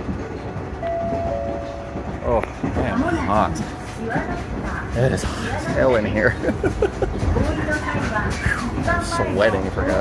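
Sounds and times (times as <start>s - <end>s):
train car rumble: 0.0s - 10.0s.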